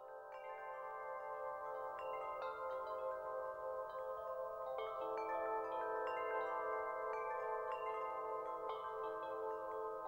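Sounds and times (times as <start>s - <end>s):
soft chimes ringing: 0.0s - 10.0s.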